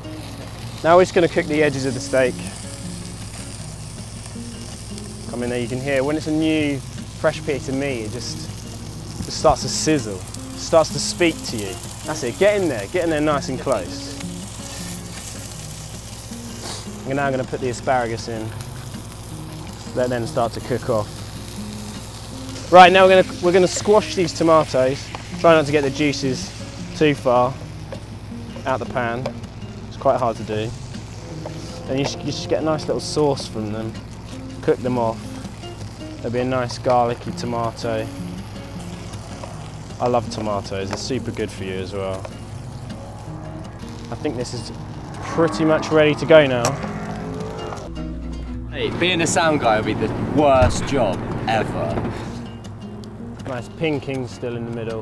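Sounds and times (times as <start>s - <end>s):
steak sizzling in frying pan: 0.0s - 47.9s
soft background music: 0.0s - 55.0s.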